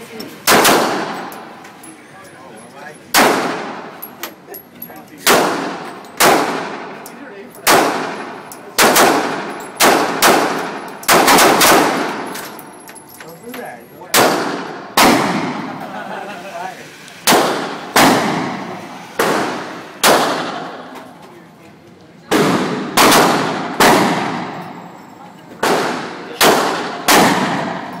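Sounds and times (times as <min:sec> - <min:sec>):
gunshots echoing indoors: 0:00.4 - 0:01.4, 0:03.1 - 0:04.0, 0:05.2 - 0:07.0, 0:07.6 - 0:12.6, 0:14.1 - 0:15.8, 0:17.3 - 0:20.9, 0:22.3 - 0:24.9, 0:25.6 - 0:28.0.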